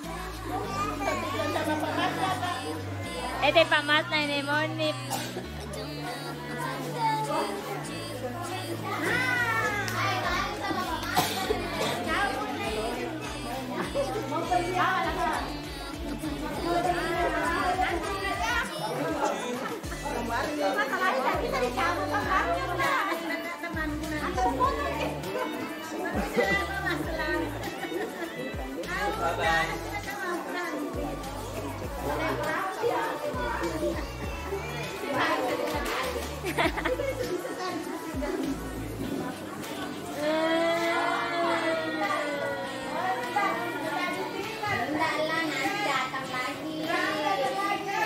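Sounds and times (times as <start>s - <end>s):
indistinct voices talking: 0.0s - 46.8s
background music with low notes: 0.0s - 48.0s
people chatting: 0.0s - 48.0s.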